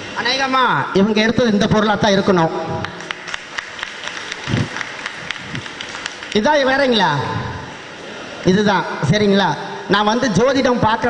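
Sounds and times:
light clapping: 0:02.8 - 0:06.4.

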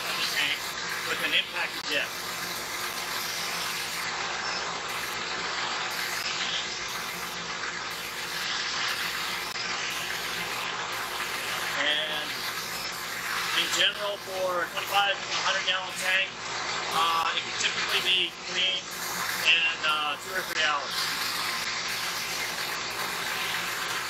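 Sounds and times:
liquid jet hissing and splashing: 0:00.0 - 0:24.0.

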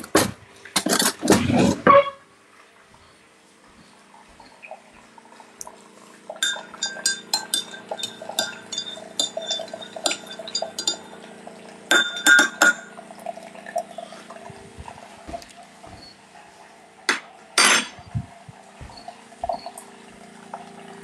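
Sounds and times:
machine hum: 0:03.0 - 0:21.0
cups and cutlery clinking: 0:06.4 - 0:11.2, 0:11.9 - 0:13.0, 0:17.1 - 0:19.8.

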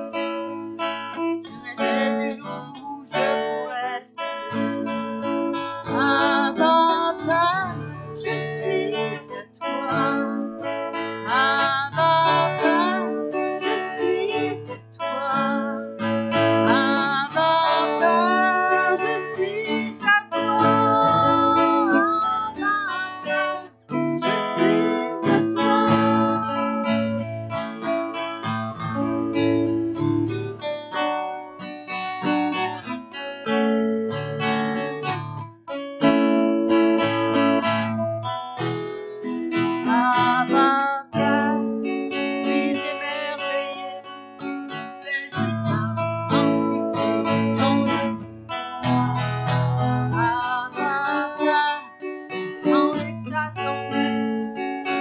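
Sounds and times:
acoustic guitar strumming: 0:00.0 - 0:55.0
woman singing: 0:01.2 - 0:27.3, 0:39.5 - 0:48.3, 0:48.9 - 0:55.0.

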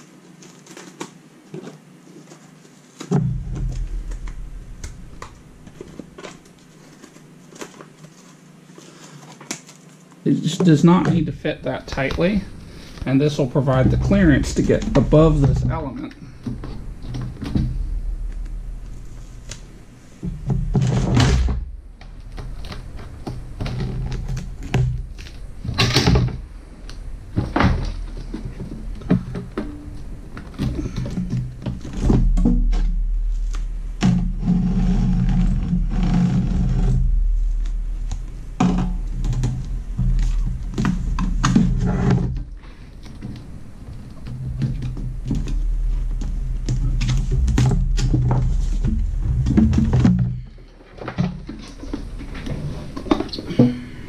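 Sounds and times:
insulation sheet rustling: 0:00.0 - 0:53.6.

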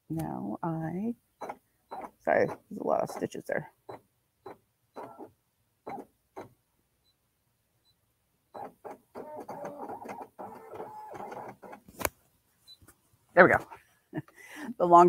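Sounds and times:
embroidery machine motors whirring: 0:08.6 - 0:11.8.

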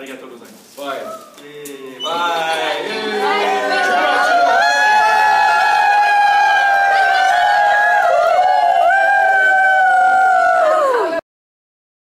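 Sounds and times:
voices singing high held notes: 0:02.0 - 0:07.6.

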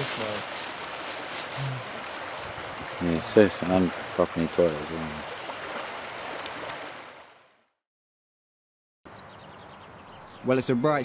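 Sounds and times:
river water rushing: 0:00.0 - 0:07.4.

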